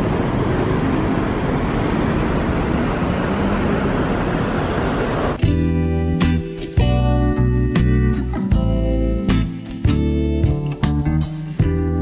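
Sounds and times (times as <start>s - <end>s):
city street traffic: 0.0s - 5.4s
strummed guitar music: 5.4s - 12.0s.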